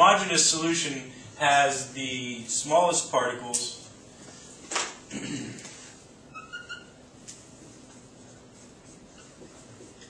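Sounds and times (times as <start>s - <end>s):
marker squeaking on whiteboard: 6.3s - 7.0s, 8.8s - 10.0s.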